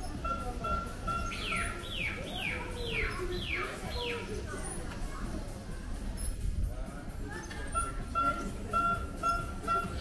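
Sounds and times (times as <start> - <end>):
low background murmur: 0.0 - 10.0
bird whistling and chirping: 0.2 - 4.3.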